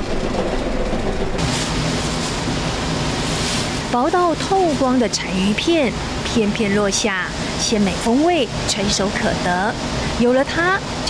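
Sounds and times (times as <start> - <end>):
loud hiss of blades shaving: 1.4 - 4.0.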